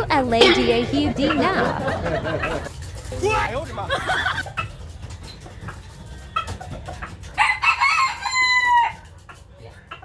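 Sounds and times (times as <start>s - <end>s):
rooster crowing: 7.4s - 9.1s.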